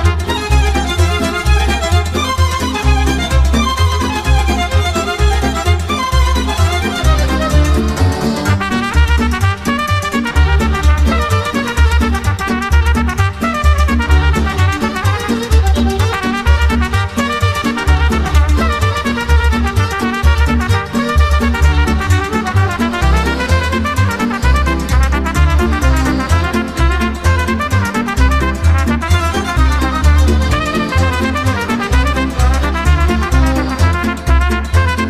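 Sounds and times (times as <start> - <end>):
instrumental folk dance music: 0.0 - 35.0.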